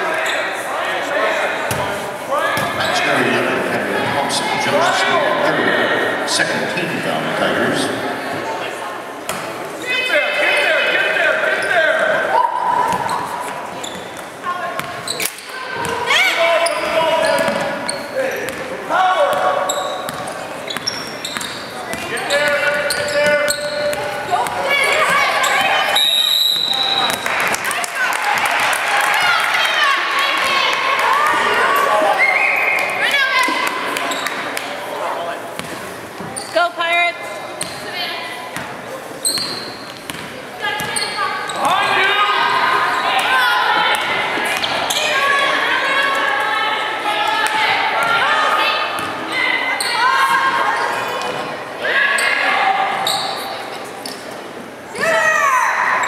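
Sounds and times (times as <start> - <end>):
people shouting and calling out: 0.0 - 8.8, 9.8 - 13.5, 14.4 - 19.8, 22.0 - 34.2, 40.6 - 53.1, 54.9 - 56.0
referee's whistle: 25.9 - 27.2.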